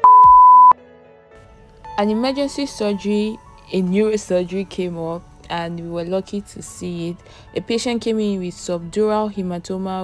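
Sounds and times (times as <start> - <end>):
loud electronic beep: 0.0 - 0.8
soft background music: 0.0 - 10.0.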